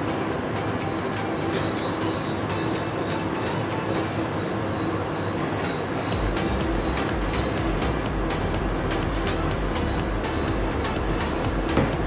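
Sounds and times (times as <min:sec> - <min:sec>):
background music: 0:00.0 - 0:05.1, 0:06.0 - 0:12.0.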